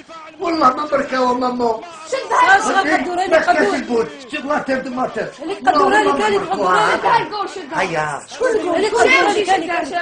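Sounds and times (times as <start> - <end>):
people chattering excitedly: 0.0 - 10.0.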